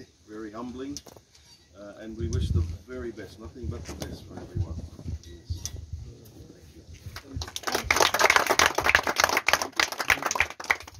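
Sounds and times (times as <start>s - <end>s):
people applauding: 7.2s - 10.9s.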